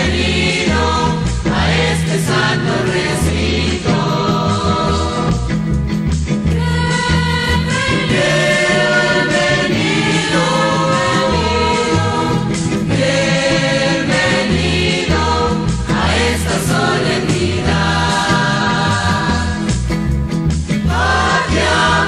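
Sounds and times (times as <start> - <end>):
group singing a hymn: 0.0 - 5.6, 6.5 - 19.8, 20.7 - 22.0
instrumental accompaniment: 0.0 - 22.0.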